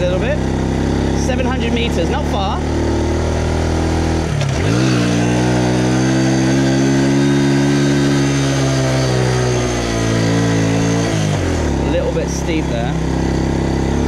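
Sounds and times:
motorbike engine under throttle: 0:00.0 - 0:14.0.

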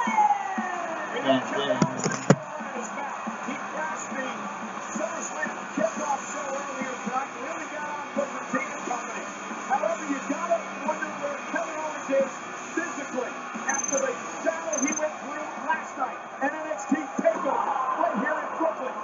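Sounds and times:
music playing: 0:00.0 - 0:19.0
voices: 0:00.0 - 0:19.0.

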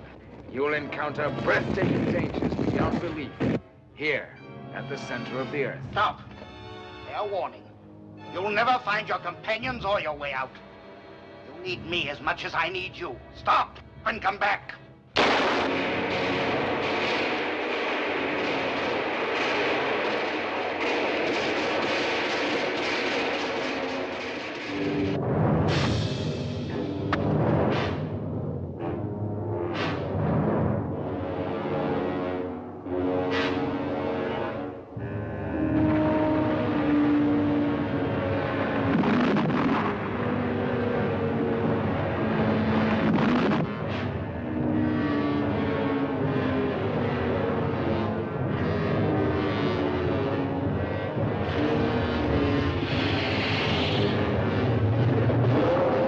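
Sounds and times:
heavy steady rumble: 0:00.0 - 0:04.0, 0:11.5 - 0:56.0
orchestral chords: 0:30.8 - 0:48.5
roaring rush of noise: 0:35.6 - 0:43.8.

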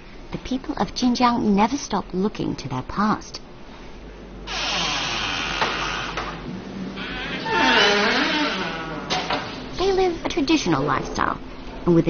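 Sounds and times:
hinge creaking: 0:07.0 - 0:09.6
heavy wooden doors scraping open: 0:07.0 - 0:09.7.

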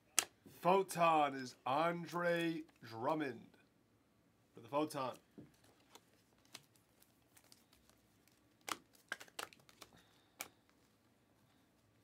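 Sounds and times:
trading cards clicking and snapping: 0:07.4 - 0:10.6.

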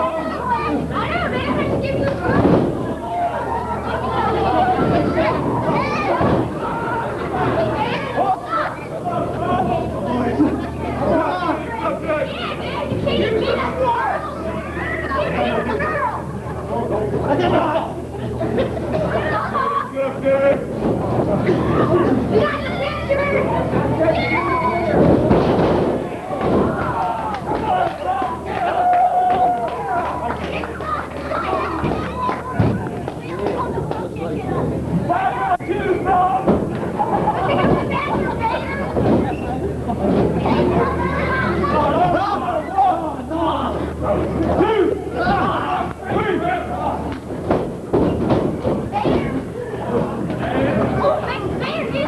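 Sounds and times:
heavy thuds of bodies landing: 0:24.9 - 0:27.8, 0:47.3 - 0:50.3
crowd shouting: 0:26.0 - 0:32.8, 0:44.6 - 0:47.1
shouting voices: 0:40.5 - 0:47.2.

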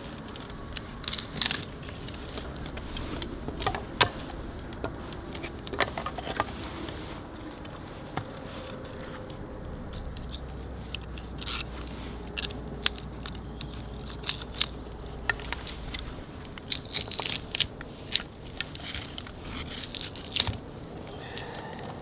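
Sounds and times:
knife shaving wood: 0:00.0 - 0:22.0.

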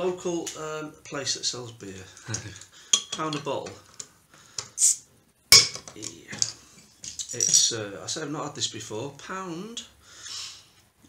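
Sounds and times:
breathy hiss: 0:09.9 - 0:10.9.

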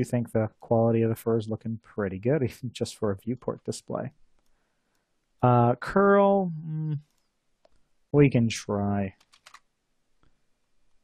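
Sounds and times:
keyboard keys clicking: 0:09.2 - 0:09.6.

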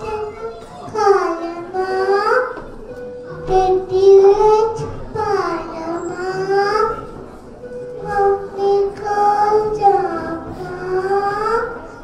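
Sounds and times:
child singing into microphone: 0:00.0 - 0:12.0.

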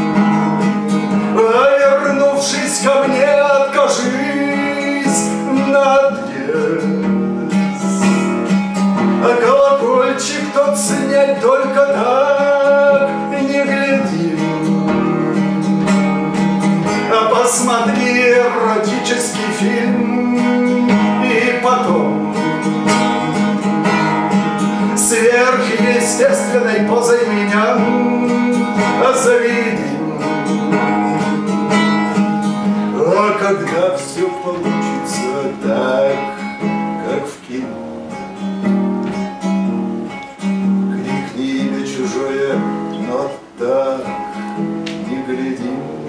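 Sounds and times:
man singing: 0:00.0 - 0:38.5, 0:40.4 - 0:46.0
acoustic guitar: 0:00.0 - 0:46.0.

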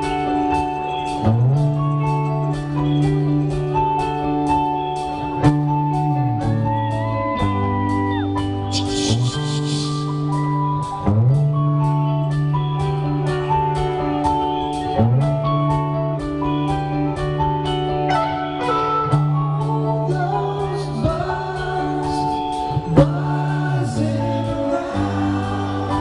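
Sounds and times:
sliding bass notes: 0:00.0 - 0:26.0
person singing: 0:08.7 - 0:10.5, 0:19.4 - 0:26.0.

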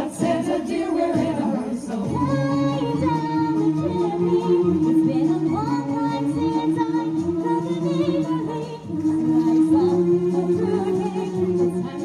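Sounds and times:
choir singing in harmony: 0:00.0 - 0:12.0.

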